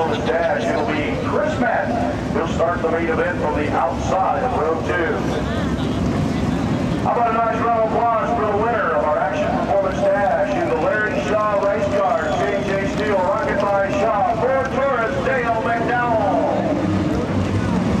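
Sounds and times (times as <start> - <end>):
race car engines revving: 0.0 - 18.0
steady background noise: 0.0 - 18.0.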